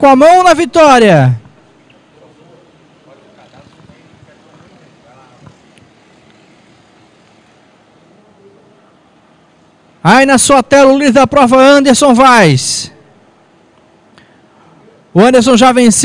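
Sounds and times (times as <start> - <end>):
steady low hiss: 0.0 - 16.0
distant kart engines: 1.6 - 10.0.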